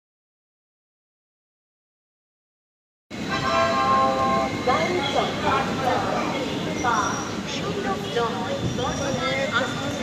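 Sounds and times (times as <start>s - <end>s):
railway station platform noise: 3.1s - 10.0s
train horn blast: 3.2s - 4.6s
people's voices: 3.2s - 10.0s.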